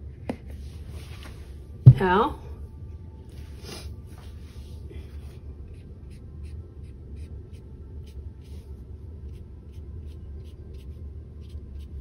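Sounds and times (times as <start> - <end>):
steady low hum: 0.0 - 12.0
paintbrush strokes scratching: 3.4 - 12.0.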